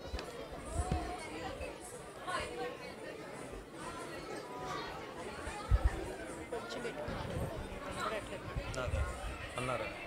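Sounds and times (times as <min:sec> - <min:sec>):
chatter of several voices: 0:00.0 - 0:10.0.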